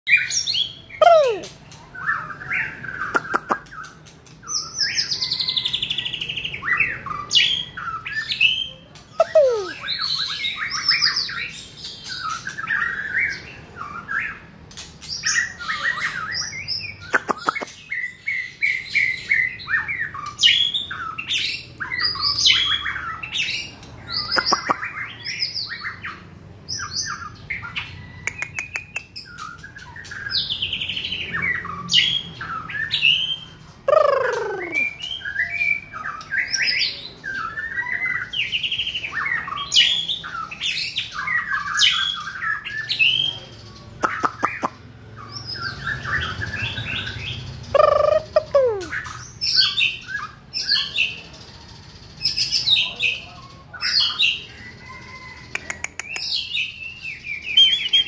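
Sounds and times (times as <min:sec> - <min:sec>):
songbird singing: 0:00.1 - 0:58.0.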